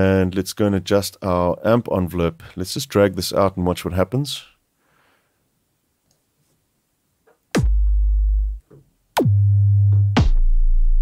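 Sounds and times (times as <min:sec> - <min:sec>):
synthesized kick drum with held low tone: 0:07.6 - 0:08.6, 0:09.2 - 0:11.0.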